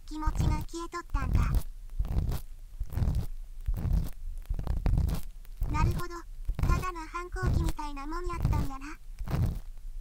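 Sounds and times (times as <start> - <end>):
ear pick scraping inside ear: 0.2 - 9.8.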